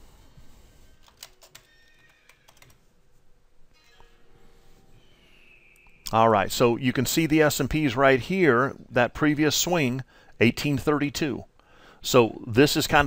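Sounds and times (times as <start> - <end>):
computer mouse and keyboard clicks: 1.0 - 2.8.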